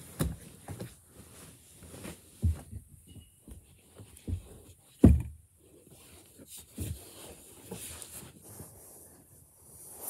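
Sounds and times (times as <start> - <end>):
soft thuds on floor: 2.4 - 3.6, 4.2 - 5.4.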